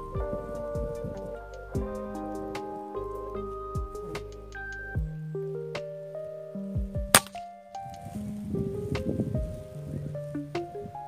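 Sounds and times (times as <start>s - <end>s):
background music: 0.0s - 11.0s
air rifle firing: 7.1s - 7.4s.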